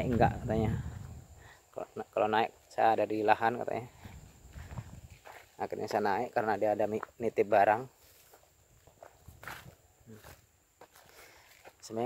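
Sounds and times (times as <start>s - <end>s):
faint footsteps on dry grass: 0.0s - 1.4s, 2.5s - 12.0s.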